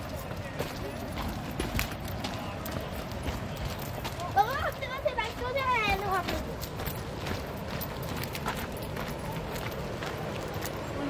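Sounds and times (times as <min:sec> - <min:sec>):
footsteps on dirt and stone: 0:00.0 - 0:11.0.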